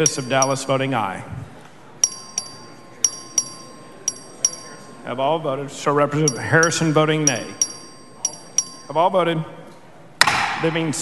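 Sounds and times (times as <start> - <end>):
voting bell double dings: 0.0 - 1.1, 2.0 - 9.4
faint steady high tone: 0.0 - 1.3, 1.9 - 9.8.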